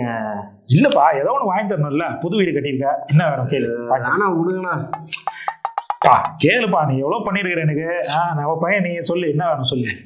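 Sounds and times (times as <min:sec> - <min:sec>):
man's voice: 0:00.0 - 0:10.0.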